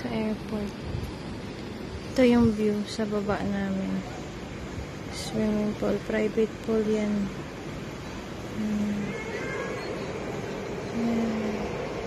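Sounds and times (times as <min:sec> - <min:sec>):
distant city traffic hum: 0:00.0 - 0:12.0.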